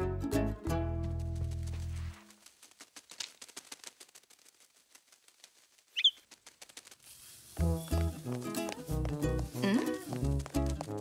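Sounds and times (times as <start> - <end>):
fast fluttering patter: 1.1 - 8.3
cartoon bird chirp: 6.0 - 6.2.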